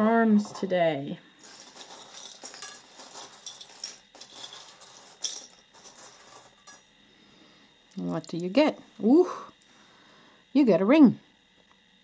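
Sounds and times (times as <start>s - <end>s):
metal charms clinking: 1.4s - 6.8s.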